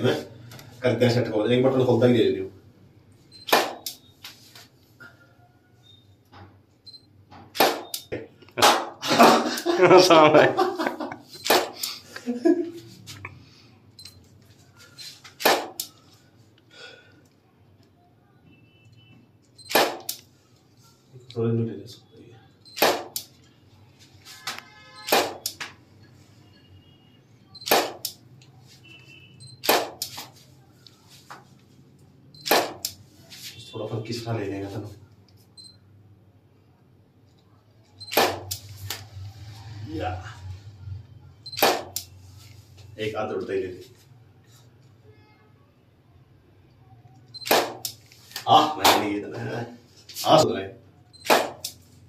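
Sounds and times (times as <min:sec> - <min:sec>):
faint short high beeps: 0:05.4 - 0:06.2, 0:18.5 - 0:19.7, 0:26.4 - 0:27.7
camera shutter clicks: 0:07.6 - 0:08.0, 0:11.4 - 0:12.0, 0:19.7 - 0:20.2, 0:27.6 - 0:28.2, 0:41.6 - 0:42.1, 0:47.4 - 0:48.0
man laughing loudly: 0:09.0 - 0:11.3, 0:12.1 - 0:12.9.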